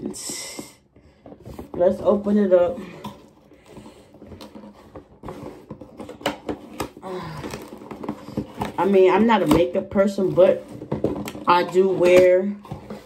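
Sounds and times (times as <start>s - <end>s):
cardboard box being opened: 3.2s - 13.0s.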